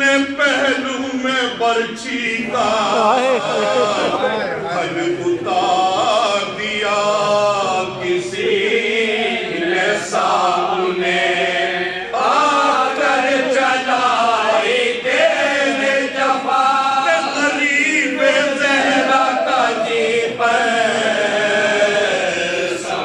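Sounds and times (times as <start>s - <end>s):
men chanting unaccompanied: 0.0s - 23.0s.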